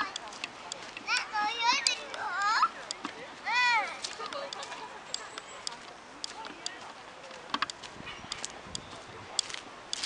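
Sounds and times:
children calling and shouting: 0.0s - 10.0s.

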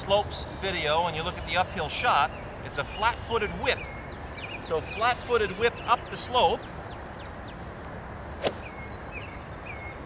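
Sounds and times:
golf club striking ball: 8.4s - 8.8s.

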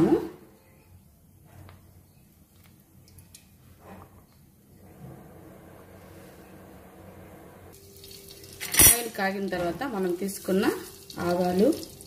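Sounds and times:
oil hissing in a pot: 7.7s - 12.0s.

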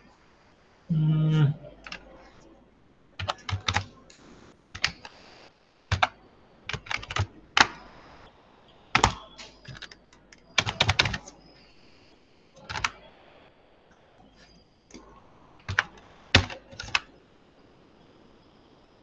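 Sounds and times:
computer keyboard typing: 3.2s - 4.0s, 4.8s - 5.2s, 5.9s - 7.8s, 8.9s - 11.4s, 12.6s - 13.0s, 15.6s - 17.1s.

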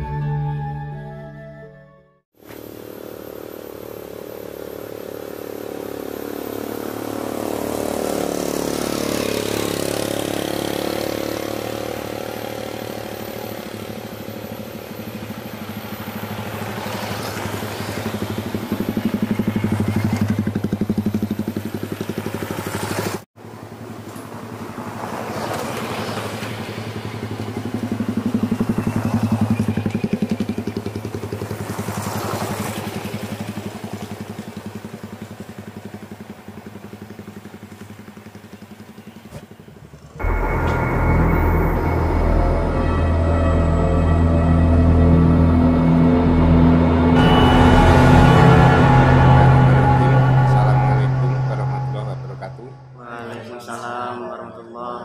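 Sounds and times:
small motorcycles riding past: 2.5s - 49.3s.

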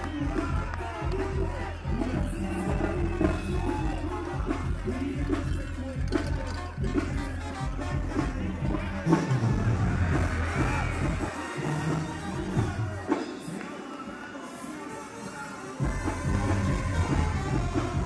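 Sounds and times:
banda music playing: 0.0s - 13.6s, 15.5s - 18.0s
crowd noise: 0.0s - 18.0s.

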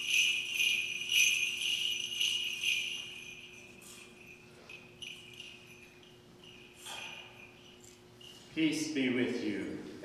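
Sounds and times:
small bells jingling: 0.0s - 9.9s
steady low hum: 0.0s - 10.0s.

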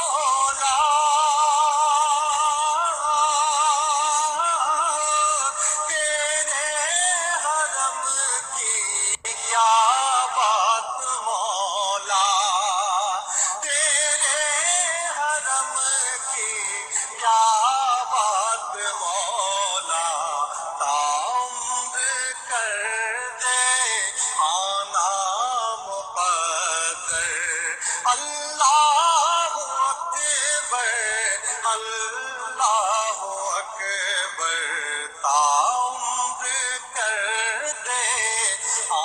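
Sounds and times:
person singing with vibrato: 0.0s - 39.0s.

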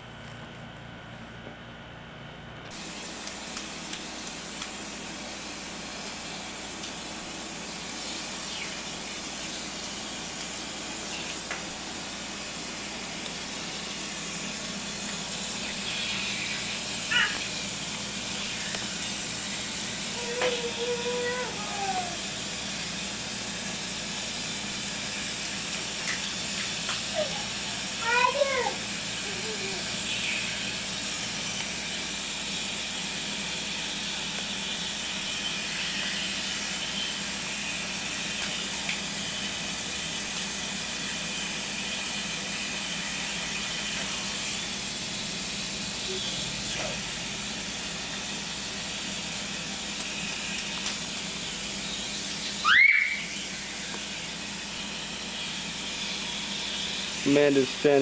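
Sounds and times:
hose spraying water: 2.7s - 58.0s
baby babbling cries: 17.1s - 17.5s
loud rising squeal: 52.6s - 53.9s.

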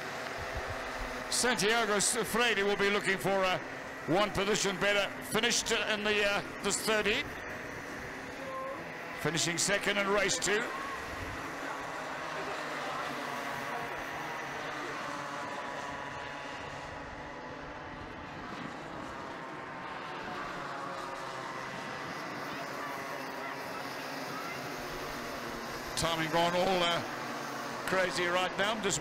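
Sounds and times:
kart engines buzzing: 0.0s - 29.0s.

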